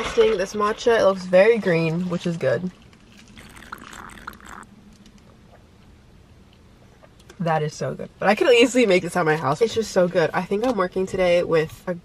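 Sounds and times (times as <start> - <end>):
slurping through a straw: 3.0 - 4.7.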